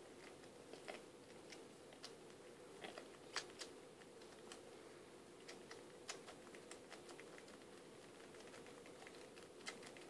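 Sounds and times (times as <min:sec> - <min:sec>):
kitten mouthing clicks and smacks: 0:02.9 - 0:04.6.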